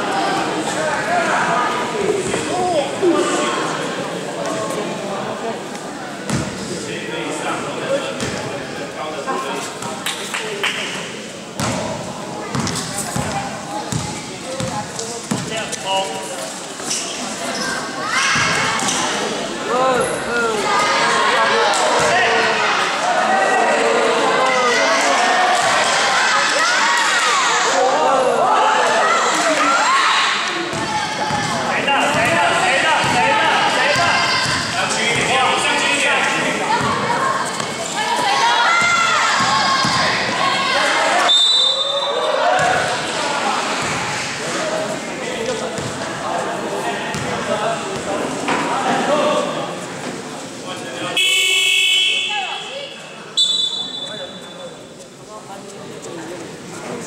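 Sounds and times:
basketball bouncing on court: 11.6s - 11.9s, 12.5s - 15.6s, 30.7s - 33.3s, 33.9s - 35.4s, 38.8s - 40.2s, 45.8s - 46.0s, 47.1s - 47.4s
people shouting: 38.0s - 42.9s
buzzer: 51.2s - 52.4s
short high whistle blasts: 53.4s - 54.2s.

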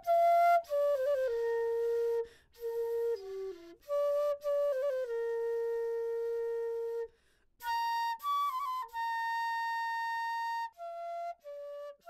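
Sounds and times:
flute holding long note: 0.0s - 12.0s.

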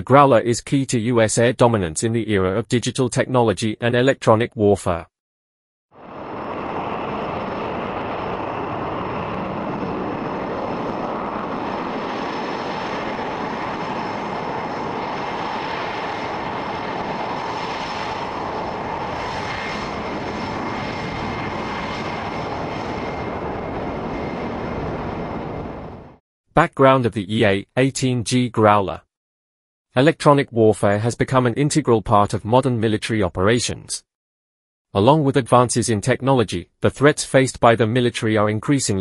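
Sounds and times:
jet engines rushing with whine: 6.0s - 26.2s.

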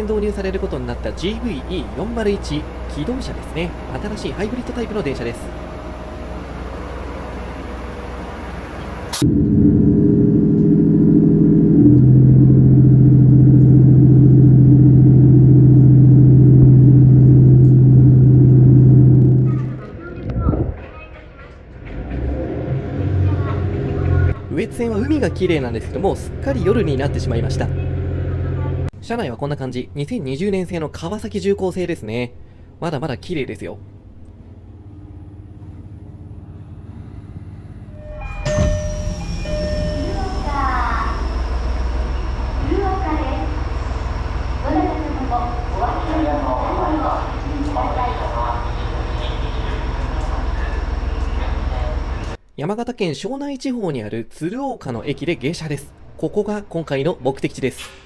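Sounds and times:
diesel railcar engine drone: 0.0s - 52.4s
train running noise: 0.0s - 52.4s.

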